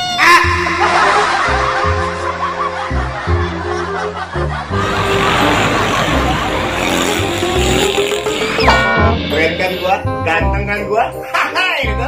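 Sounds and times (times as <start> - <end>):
motorcycle engine: 4.7 - 9.3
road traffic passing: 4.7 - 9.3
truck engine: 4.7 - 9.3
short rising tone: 4.8 - 9.4.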